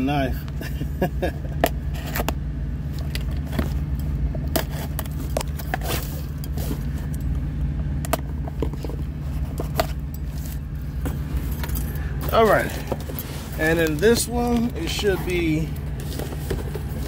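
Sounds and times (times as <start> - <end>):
steady low hum: 0.0 - 17.0.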